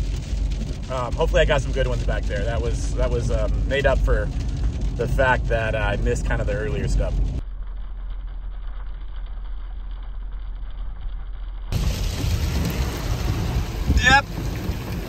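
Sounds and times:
muffled road and engine rumble: 0:00.0 - 0:15.0
wet tyres and rain on glass: 0:00.0 - 0:15.0.

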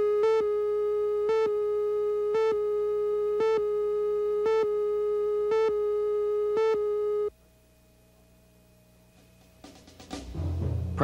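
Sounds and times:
electronic line-up tone: 0:00.0 - 0:07.3
faint hum: 0:00.0 - 0:11.0.

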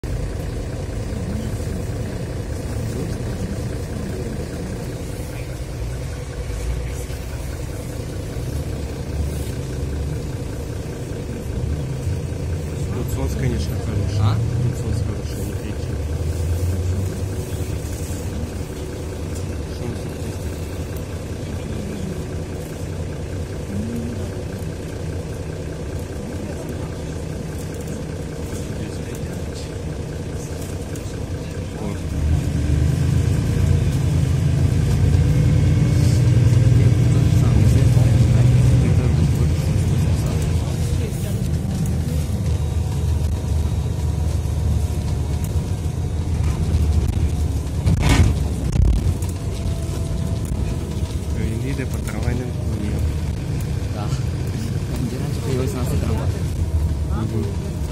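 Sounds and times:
bus engine and road rumble: 0:00.0 - 0:57.9.

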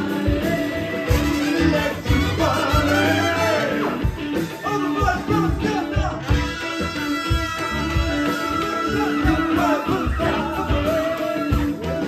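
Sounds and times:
live band playing: 0:00.0 - 0:12.0
voices singing: 0:00.0 - 0:12.0.

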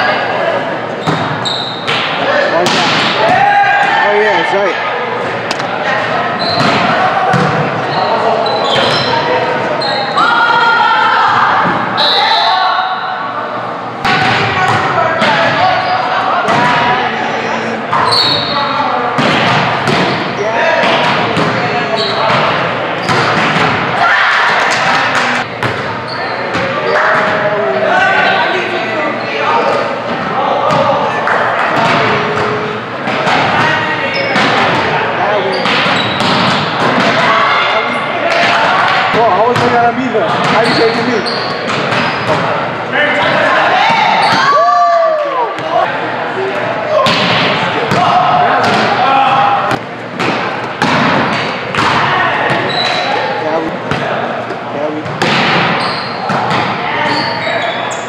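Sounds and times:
volleyball smacks and thuds: 0:49.7 - 0:52.7, 0:55.0 - 0:56.8.

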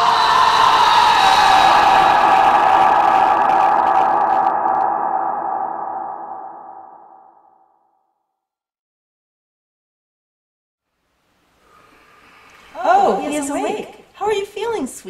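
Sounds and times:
sustained electronic drone: 0:00.1 - 0:07.8.

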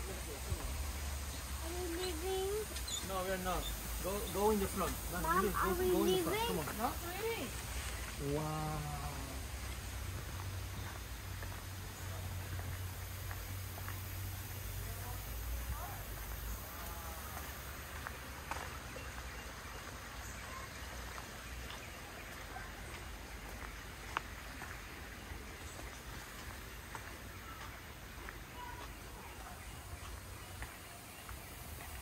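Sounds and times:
background hiss: 0:00.0 - 0:32.0
faint indistinct voices: 0:25.8 - 0:32.0.

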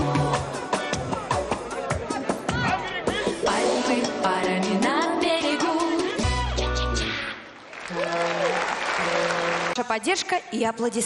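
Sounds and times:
song music: 0:00.0 - 0:07.6
audience applauding: 0:07.5 - 0:10.1.

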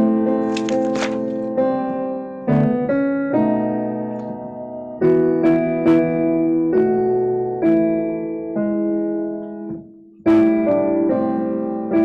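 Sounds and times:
piano playing slow chords: 0:00.0 - 0:12.0.

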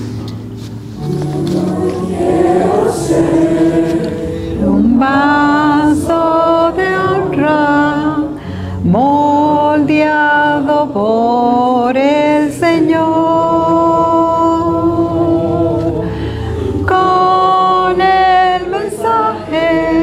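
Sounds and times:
women singing a hymn: 0:01.0 - 0:20.0.

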